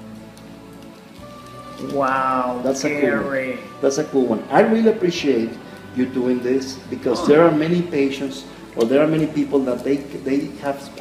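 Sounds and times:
faint background music: 0:00.0 - 0:11.0
chocolate bar crunching: 0:00.2 - 0:03.3.

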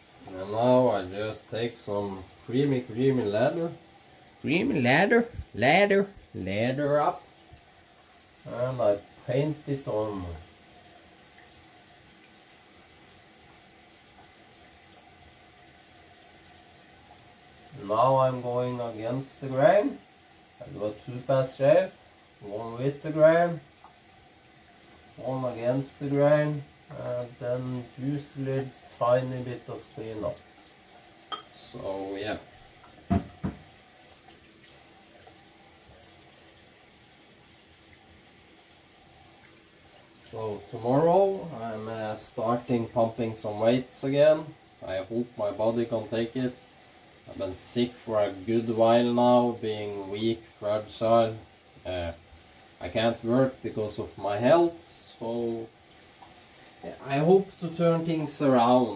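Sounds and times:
water tap running into sink: 0:00.0 - 0:58.9
sharp knocks: 0:33.1 - 0:33.7.

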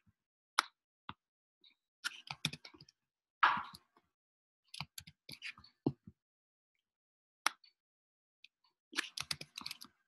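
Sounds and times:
computer mouse clicks: 0:09.0 - 0:10.0.

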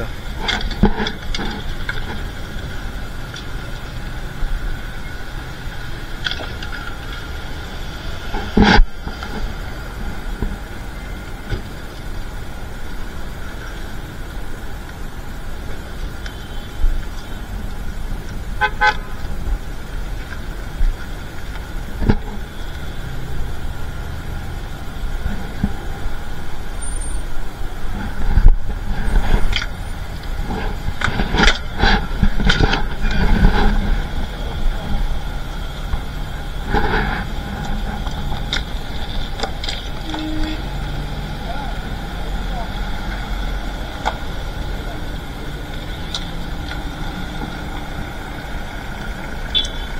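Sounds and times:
street traffic: 0:00.0 - 0:49.9
car horn toot: 0:16.3 - 0:17.4, 0:18.6 - 0:19.2, 0:40.0 - 0:40.9, 0:49.5 - 0:49.9.

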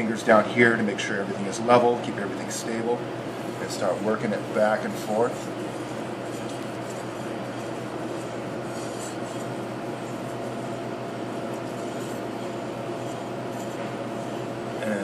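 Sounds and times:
knife scraping on whetstone: 0:05.4 - 0:10.8, 0:11.4 - 0:14.5.

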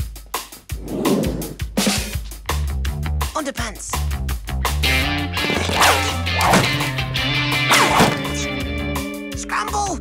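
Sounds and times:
cartoon background music: 0:01.5 - 0:10.0.

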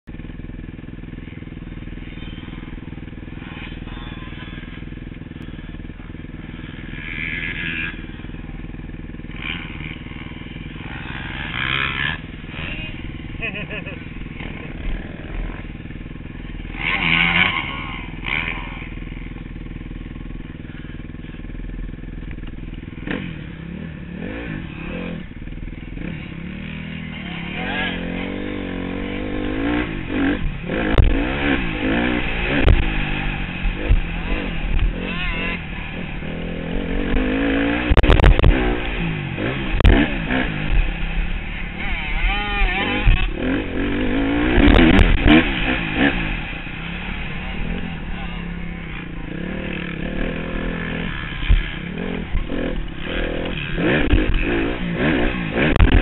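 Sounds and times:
dirt bike engine revving: 0:00.1 - 0:56.0.

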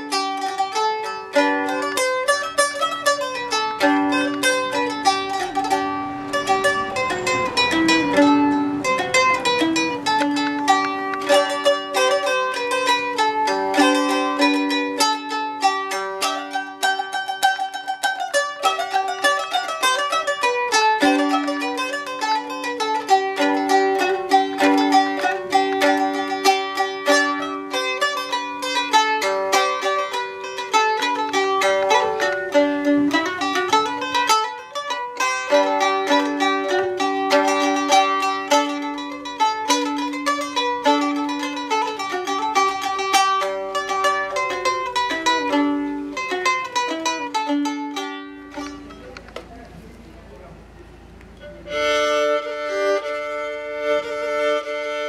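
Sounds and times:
plucked lute dance tune: 0:00.0 - 0:50.1, 0:51.2 - 0:55.0.

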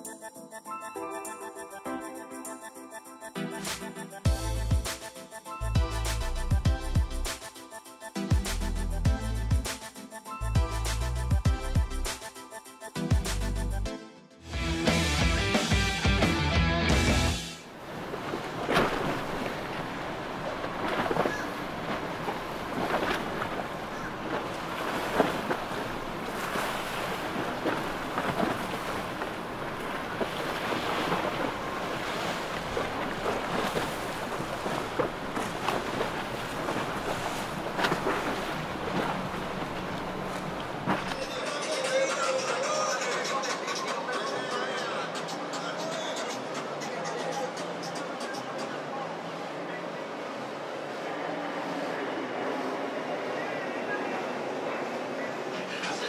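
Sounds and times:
boat engine: 0:14.5 - 0:41.8, 0:46.9 - 0:56.0
water rushing and splashing: 0:17.0 - 0:56.0.

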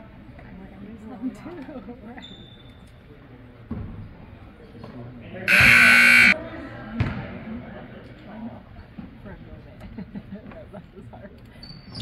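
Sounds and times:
scoreboard horn buzzing: 0:05.5 - 0:06.4.

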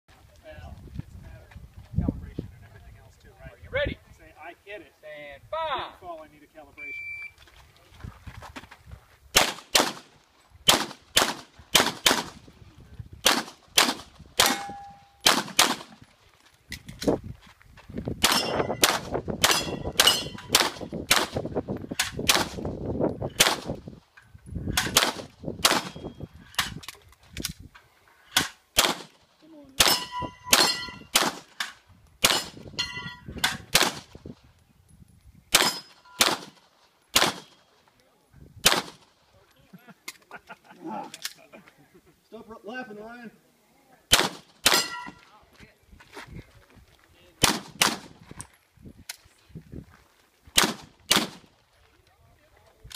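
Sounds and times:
pistol shots: 0:09.4 - 0:10.1, 0:10.7 - 0:12.4, 0:13.2 - 0:15.9, 0:18.2 - 0:21.4, 0:23.3 - 0:23.8, 0:24.8 - 0:26.0, 0:28.4 - 0:29.2, 0:29.8 - 0:32.6, 0:33.4 - 0:34.1, 0:35.5 - 0:37.6, 0:38.6 - 0:39.0, 0:44.1 - 0:45.1, 0:47.4 - 0:48.1, 0:50.6 - 0:51.5
steel target ringing: 0:14.4 - 0:15.2, 0:29.8 - 0:31.1, 0:32.4 - 0:33.3, 0:44.7 - 0:45.2.

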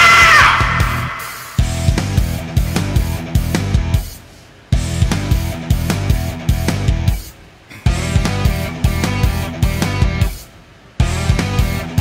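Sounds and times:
drums and electric guitar: 0:00.0 - 0:12.0
rock band backing track: 0:00.0 - 0:12.0.

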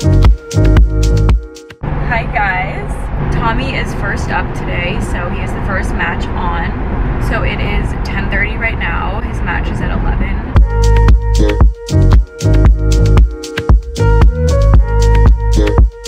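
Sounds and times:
car road and engine noise: 0:00.0 - 0:16.0
woman talking: 0:02.0 - 0:10.6.

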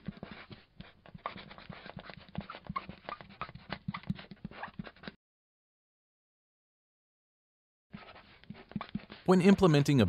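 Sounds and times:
marker pen writing on whiteboard: 0:00.0 - 0:05.2, 0:08.0 - 0:10.0.

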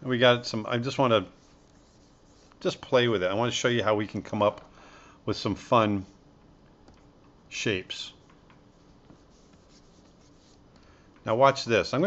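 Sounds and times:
stylus scratching on tablet: 0:01.3 - 0:02.9, 0:08.2 - 0:10.7.

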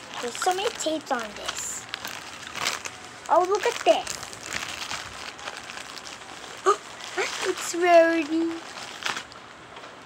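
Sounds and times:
plastic bag crinkling: 0:00.0 - 0:09.4.

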